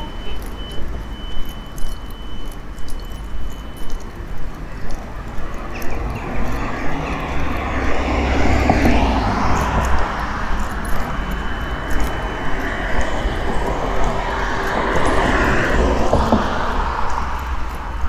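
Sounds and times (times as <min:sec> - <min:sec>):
broad rushing noise: 0:00.0 - 0:18.0
footsteps on paving: 0:00.0 - 0:18.0
low engine rumble: 0:00.0 - 0:18.0.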